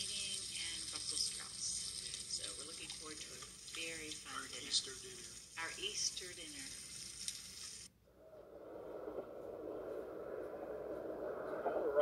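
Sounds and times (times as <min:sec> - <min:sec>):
food sizzling on a grill: 0:00.0 - 0:07.9
steady low rumble: 0:08.2 - 0:12.0.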